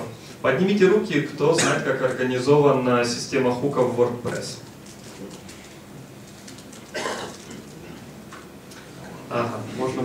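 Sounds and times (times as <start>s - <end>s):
faint hum and hiss: 0.0s - 10.0s.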